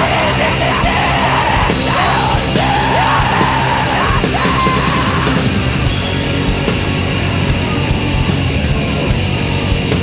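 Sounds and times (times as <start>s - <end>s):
distorted band music: 0.0s - 10.0s.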